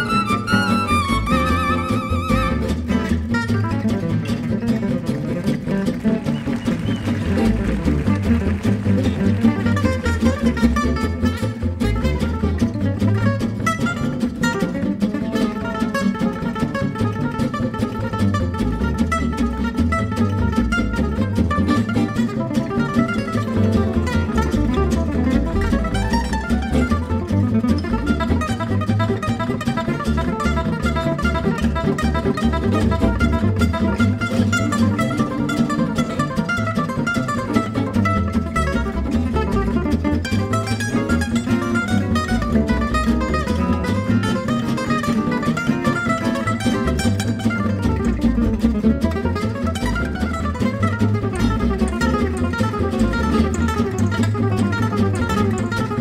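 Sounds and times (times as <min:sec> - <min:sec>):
lead acoustic guitar soloing: 0:00.0 - 0:56.0
strummed rhythm guitar: 0:00.0 - 0:56.0.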